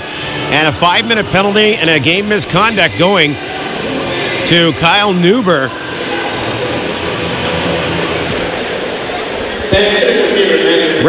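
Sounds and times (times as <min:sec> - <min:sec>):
arena crowd hubbub: 0:00.0 - 0:11.0.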